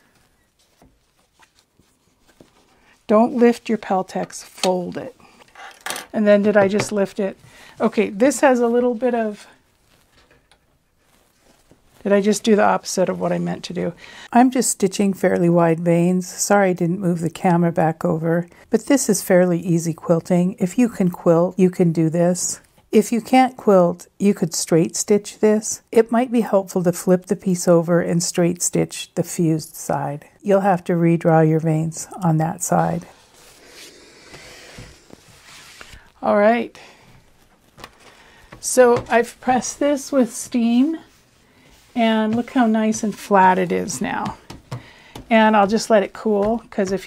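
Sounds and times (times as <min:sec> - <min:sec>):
stiff fabric rustling: 0:00.0 - 0:04.1, 0:06.5 - 0:14.0, 0:32.9 - 0:47.0.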